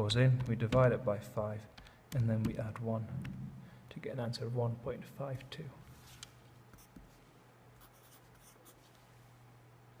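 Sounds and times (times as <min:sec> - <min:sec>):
steady low hum: 0:00.0 - 0:10.0
pencil scratching on paper: 0:07.8 - 0:08.8.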